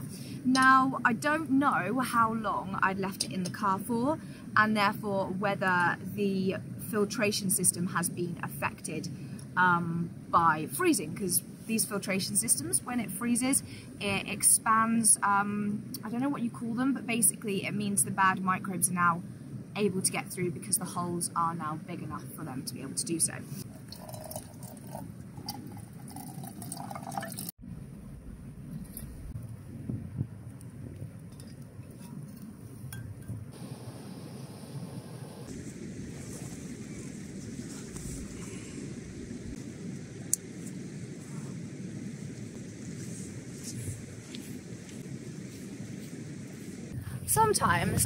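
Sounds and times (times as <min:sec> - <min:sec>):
low outdoor rumble: 0:00.0 - 0:48.0
water pouring into metal pot: 0:23.8 - 0:27.5.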